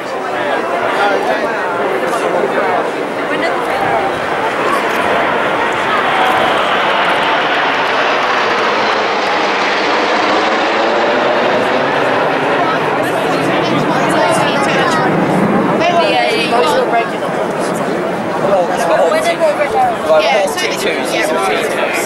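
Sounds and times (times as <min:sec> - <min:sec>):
jets passing overhead: 0:00.0 - 0:22.0
people talking: 0:00.0 - 0:22.0.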